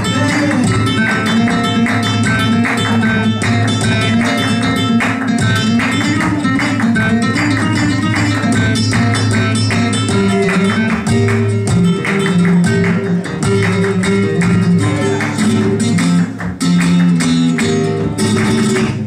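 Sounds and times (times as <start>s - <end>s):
flamenco guitar playing: 0.0s - 19.0s
rhythmic hand clapping: 0.0s - 19.0s.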